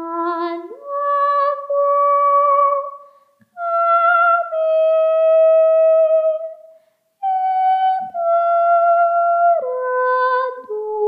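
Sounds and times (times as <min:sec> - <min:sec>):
woman singing a cappella: 0:00.0 - 0:11.0.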